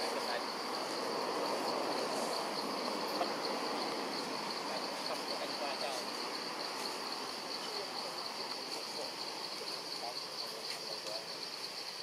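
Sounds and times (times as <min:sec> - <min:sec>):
background hiss: 0:00.0 - 0:12.0
insects droning: 0:00.0 - 0:12.0.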